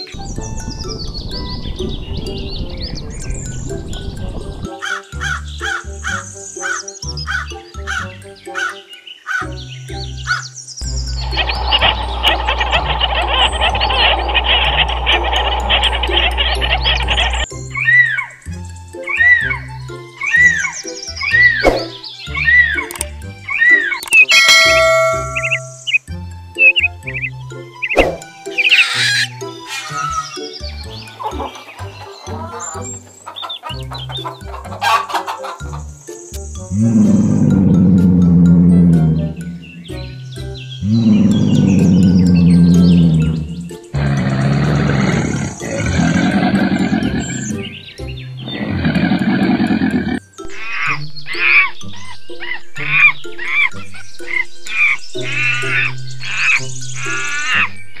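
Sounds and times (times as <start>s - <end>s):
animal calls: 4.7s - 9.5s, 10.2s - 18.4s, 27.9s - 36.0s, 36.7s - 58.0s
background music with low beat: 21.2s - 28.7s.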